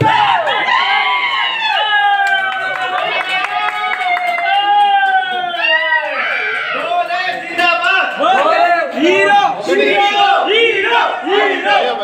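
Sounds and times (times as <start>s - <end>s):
crowd of men chanting: 9.0s - 12.0s.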